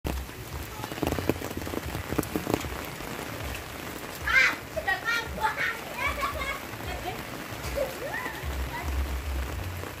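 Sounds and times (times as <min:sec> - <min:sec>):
louder rain taps: 0:00.0 - 0:10.0
steady rain on road and foliage: 0:00.0 - 0:10.0.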